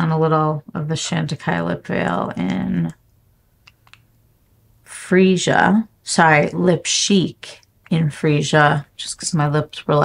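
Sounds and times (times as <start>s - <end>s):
faint small clicks: 2.8s - 4.2s.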